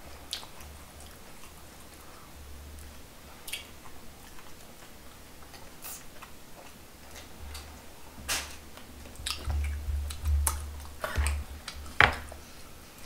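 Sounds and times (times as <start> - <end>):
person chewing food: 0.2 - 7.9, 8.8 - 12.6
wet mouth clicks and smacks: 3.4 - 3.7, 9.2 - 11.0
low hum: 9.0 - 12.5.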